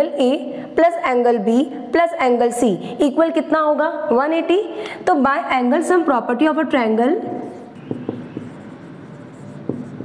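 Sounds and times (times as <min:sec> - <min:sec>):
pen scratching while writing: 0:07.3 - 0:10.0
light pen taps: 0:07.8 - 0:08.5.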